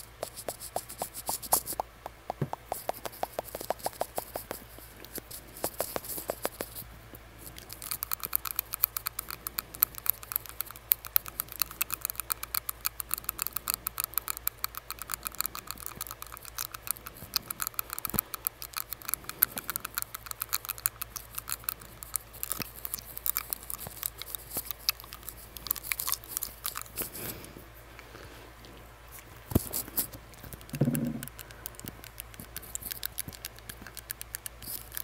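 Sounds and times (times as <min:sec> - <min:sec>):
tongue ring clicking on teeth: 0:00.0 - 0:06.8, 0:07.5 - 0:27.4, 0:29.3 - 0:35.0.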